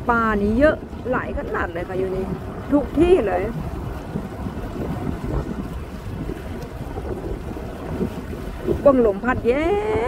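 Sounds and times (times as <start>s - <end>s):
water noise: 0.0s - 10.0s
wind buffeting microphone: 0.0s - 10.0s.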